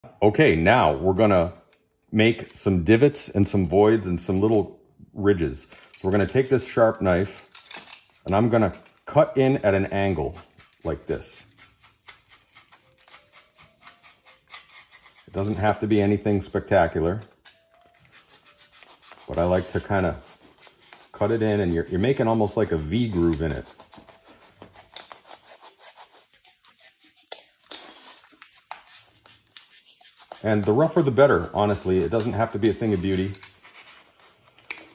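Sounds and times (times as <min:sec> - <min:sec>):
knife cutting foam board: 0:07.3 - 0:16.6, 0:17.2 - 0:34.9.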